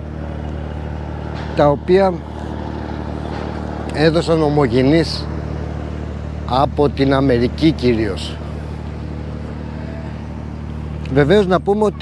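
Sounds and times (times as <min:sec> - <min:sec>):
low engine hum: 0:00.0 - 0:12.0
man speaking: 0:03.9 - 0:05.3, 0:06.5 - 0:08.5, 0:11.1 - 0:12.0.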